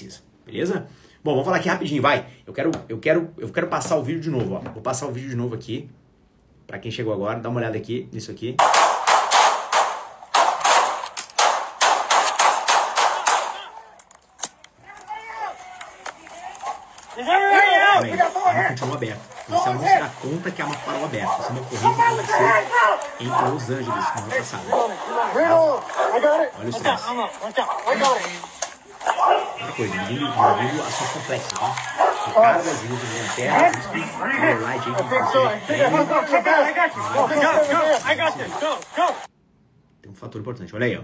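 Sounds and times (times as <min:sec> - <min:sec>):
rapid handgun shots: 0:08.6 - 0:13.8
police officers' voices: 0:12.3 - 0:39.3.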